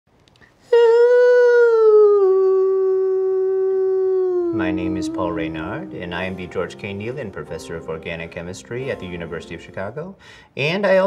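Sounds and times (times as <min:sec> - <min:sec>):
man singing a long high note: 0:00.7 - 0:07.4.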